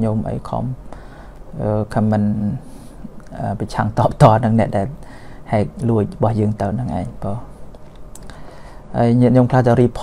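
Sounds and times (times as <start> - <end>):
man talking: 0.0 - 0.9, 1.5 - 7.6, 8.9 - 10.0.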